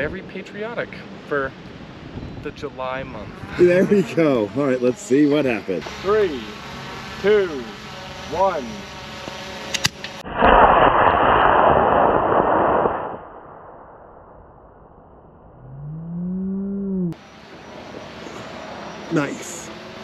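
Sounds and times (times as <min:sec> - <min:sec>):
rocket motor roar: 0:01.0 - 0:11.6, 0:15.4 - 0:20.0
person exclaiming: 0:03.4 - 0:05.8
sharp clicks: 0:09.7 - 0:10.2.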